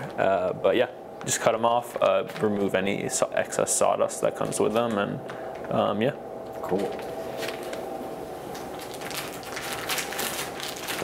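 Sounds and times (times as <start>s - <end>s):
crackling rustling handling noise: 1.1s - 5.8s, 6.4s - 11.0s.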